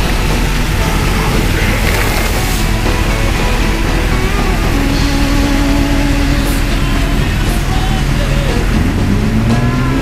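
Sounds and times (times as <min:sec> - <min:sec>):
motorcycle engine running: 0:00.0 - 0:10.0
traffic on wet street: 0:00.0 - 0:10.0.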